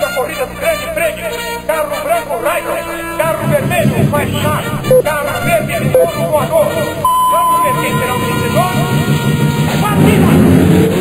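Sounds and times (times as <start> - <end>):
steady high tone: 1.8 - 9.2.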